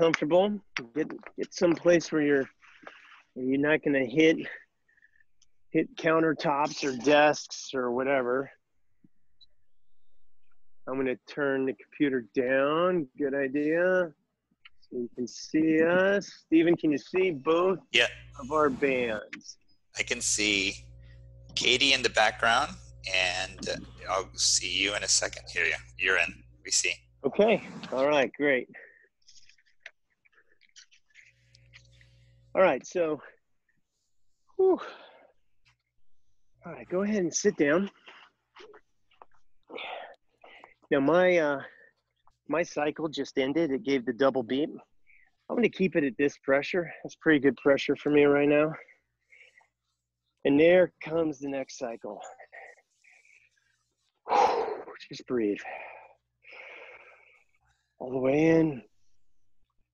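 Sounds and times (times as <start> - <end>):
faint low hum: 14.7 - 28.9.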